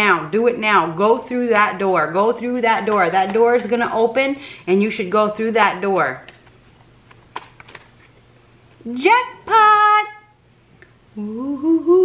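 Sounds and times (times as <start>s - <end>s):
cards clicking and rustling: 6.2s - 8.3s.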